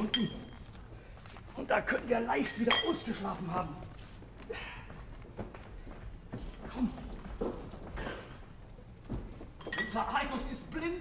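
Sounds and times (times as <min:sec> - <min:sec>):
footsteps on wooden floor: 0:03.5 - 0:09.7.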